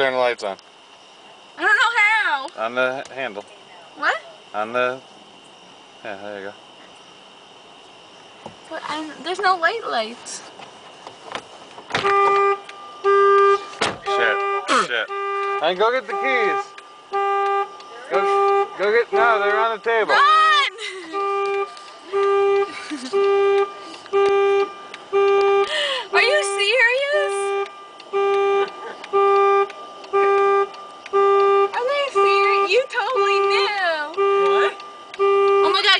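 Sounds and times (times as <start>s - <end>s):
electric vehicle horn beeping: 12.0s - 20.2s, 21.0s - 35.9s
high voices whooping: 20.0s - 21.2s.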